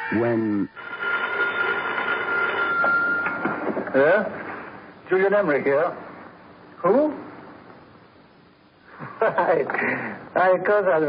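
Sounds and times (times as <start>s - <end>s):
telephone bell ringing: 0.0s - 3.8s.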